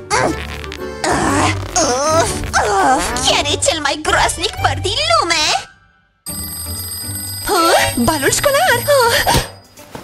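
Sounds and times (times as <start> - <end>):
background music: 0.0 - 10.0
high electronic ringing tone: 6.3 - 9.7.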